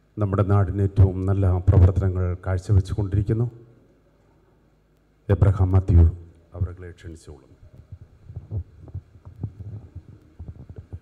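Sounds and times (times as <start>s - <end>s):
low hum: 5.4s - 11.0s
faint low thumps: 7.7s - 11.0s.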